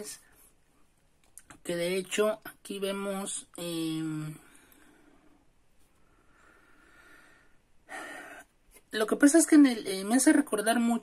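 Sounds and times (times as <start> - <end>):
woman inhaling: 4.5 - 8.5.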